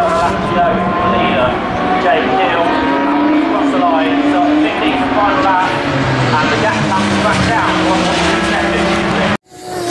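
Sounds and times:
race car engines passing: 0:00.0 - 0:09.9.

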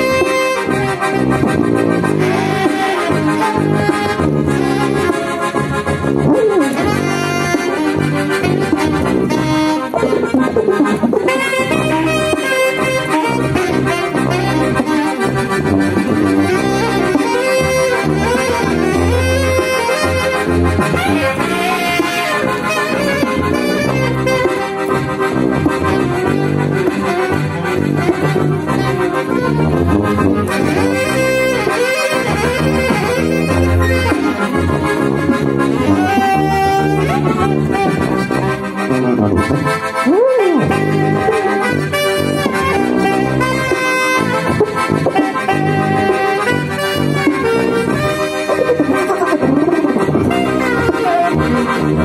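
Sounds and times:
accordion: 0:00.0 - 0:52.0
alto saxophone: 0:00.0 - 0:52.0
tuba low notes: 0:00.0 - 0:52.0.

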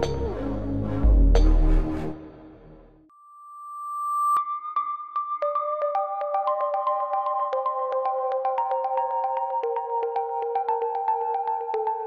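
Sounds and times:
logo jingle music: 0:00.0 - 0:02.9
steady synthesizer tone: 0:00.0 - 0:03.0.

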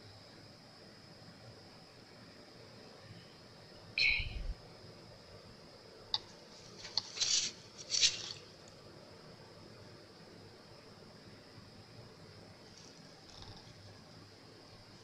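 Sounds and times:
faint steady hiss: 0:00.0 - 0:15.0
gloved hands rustling: 0:06.6 - 0:08.5.

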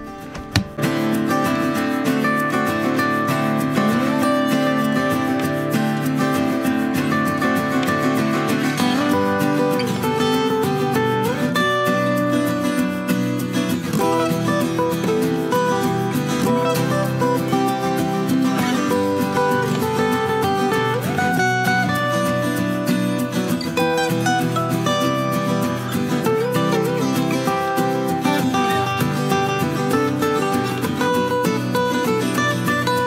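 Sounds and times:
strummed acoustic guitar chords: 0:00.0 - 0:33.0.

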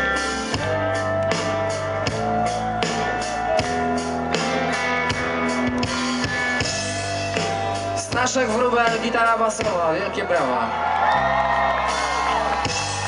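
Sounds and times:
drum kit beat: 0:00.0 - 0:10.1, 0:11.8 - 0:13.0
bass guitar: 0:00.0 - 0:13.0
electric guitars: 0:00.0 - 0:13.0.

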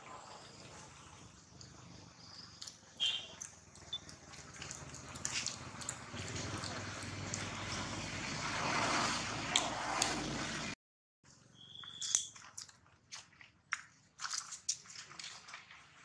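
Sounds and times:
short high whistle-like tone: 0:11.5 - 0:12.3.

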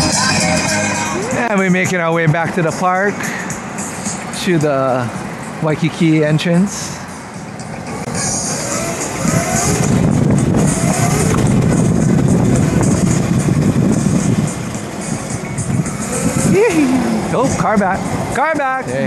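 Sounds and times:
voices: 0:00.0 - 0:03.6, 0:16.1 - 0:19.0
road noise: 0:00.0 - 0:19.0
wind rush on microphone: 0:09.0 - 0:19.0.

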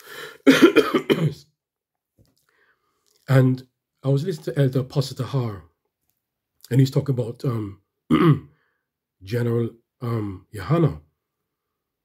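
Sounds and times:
intake of breath: 0:00.0 - 0:00.5
man coughing: 0:00.3 - 0:01.5, 0:08.1 - 0:08.5.

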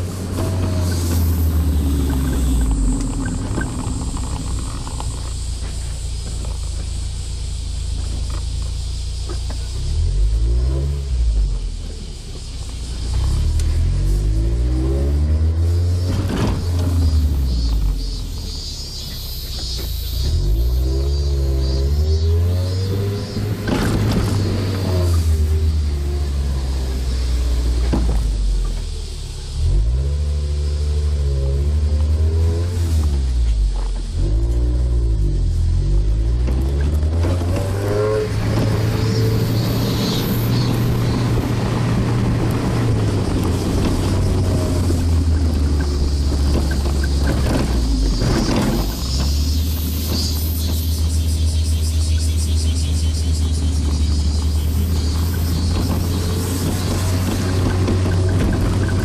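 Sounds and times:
car engine revving: 0:00.0 - 0:59.0
road and wind noise: 0:00.0 - 0:59.0.

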